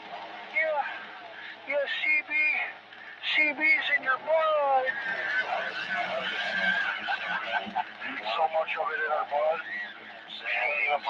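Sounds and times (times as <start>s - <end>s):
radio static and hiss: 0.0s - 11.0s
garbled radio voices: 0.6s - 11.0s.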